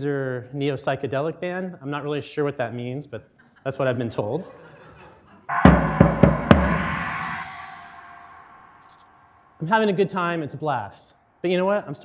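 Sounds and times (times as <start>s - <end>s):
deep drum hits: 5.5s - 8.8s
ringing cymbal wash: 5.5s - 10.5s.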